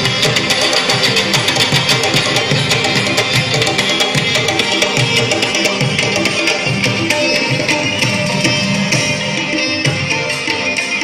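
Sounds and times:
fast hand-drum beat: 0:00.0 - 0:11.0
plucked string instrument: 0:00.0 - 0:11.0.

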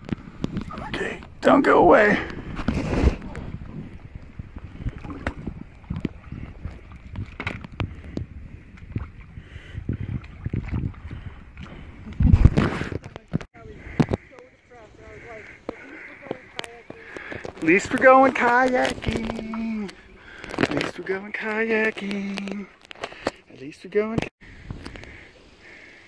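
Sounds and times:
water movement: 0:00.0 - 0:26.0
paddle knocking and rubbing hull: 0:02.4 - 0:09.2, 0:15.7 - 0:19.9.

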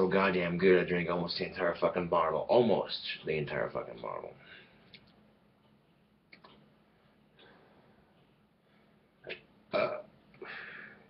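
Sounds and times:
man burping: 0:09.2 - 0:10.6.

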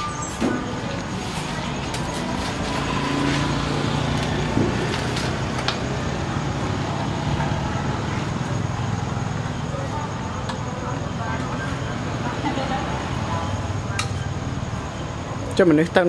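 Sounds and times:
street traffic: 0:00.0 - 0:16.0
vehicle engine humming: 0:00.0 - 0:16.0.

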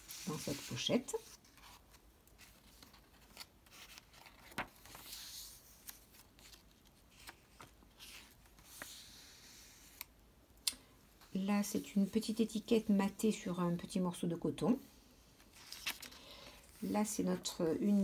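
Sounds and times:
paper rustling: 0:00.0 - 0:10.0, 0:15.4 - 0:17.2.

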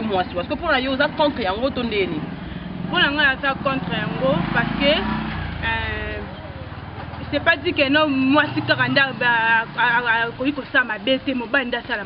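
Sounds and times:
vehicle engine rumbling: 0:00.0 - 0:12.0.

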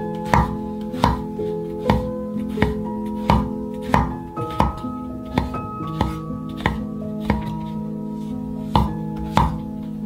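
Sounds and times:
background music: 0:00.0 - 0:10.0
knife slicing on wooden board: 0:00.1 - 0:07.8.

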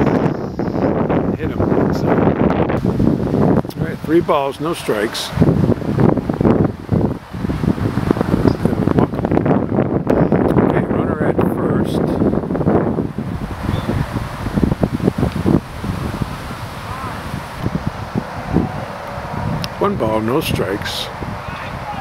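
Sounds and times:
wind rumbling on microphone: 0:00.0 - 0:22.0
people talking: 0:01.3 - 0:02.2, 0:03.7 - 0:05.4, 0:10.5 - 0:12.2, 0:19.6 - 0:22.0.

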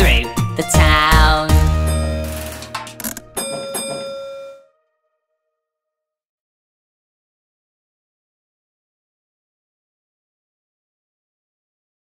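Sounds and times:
bell-like chime strikes: 0:01.9 - 0:04.6.

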